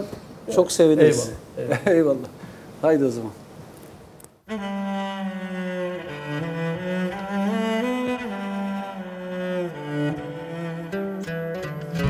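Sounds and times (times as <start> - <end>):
cello holding low notes: 4.5 - 12.0.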